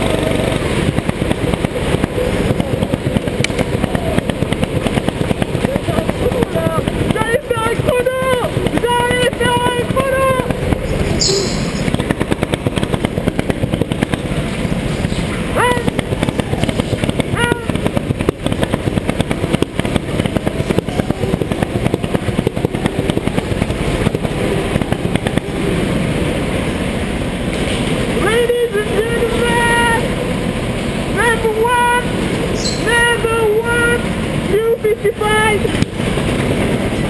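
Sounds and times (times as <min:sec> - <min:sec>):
go-kart engine drone: 0:00.0 - 0:37.0
rising engine whines: 0:00.0 - 0:37.0.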